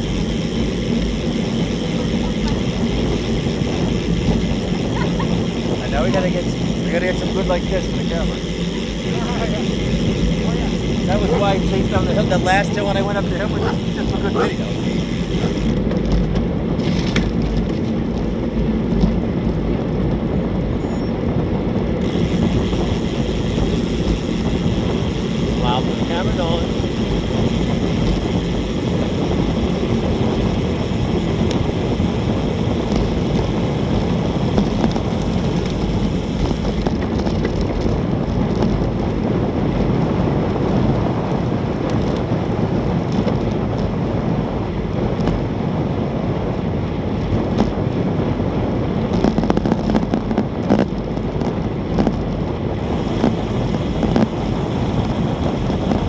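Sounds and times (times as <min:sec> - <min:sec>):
wind rushing over microphone: 0:00.0 - 0:56.0.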